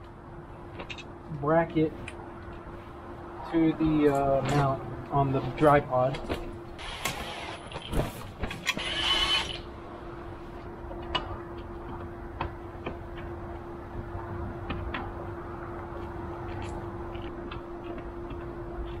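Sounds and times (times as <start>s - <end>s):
steady hum: 0.0s - 19.0s
cordless drill motor whining: 6.8s - 7.7s, 8.6s - 9.6s.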